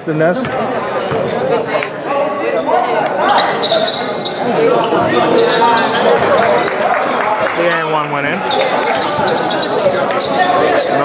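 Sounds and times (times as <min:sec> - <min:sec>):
voices in hall: 0:00.0 - 0:11.0.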